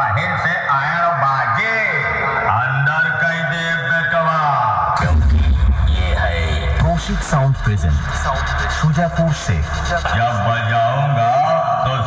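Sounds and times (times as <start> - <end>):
processed male voice with echo: 0.0 - 12.0
electronic dance music: 4.9 - 11.8
deep bass: 5.0 - 11.0.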